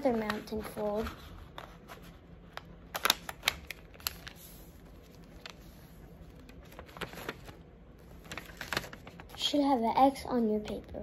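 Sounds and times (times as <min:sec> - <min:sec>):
paper folding and rustling: 0:00.0 - 0:09.6.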